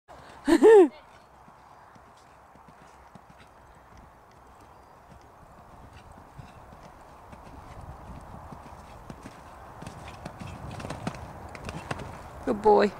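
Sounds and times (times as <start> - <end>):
horse hoofbeats on sand: 1.0 - 12.3.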